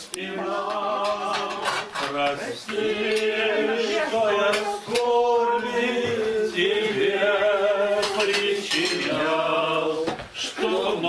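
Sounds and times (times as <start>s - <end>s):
group singing a slow hymn: 0.0s - 11.0s
cutlery and dishes clinking: 0.6s - 5.1s, 7.9s - 9.4s.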